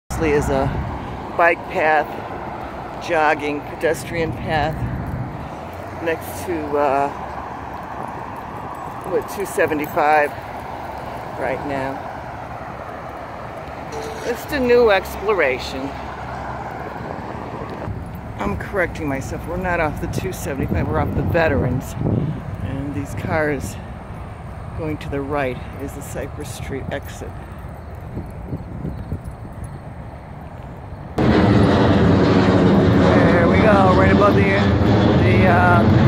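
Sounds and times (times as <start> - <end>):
jet airliner flying overhead: 0.1 - 9.4, 10.1 - 26.4, 29.6 - 36.0
traffic rushing at speed: 0.1 - 36.0.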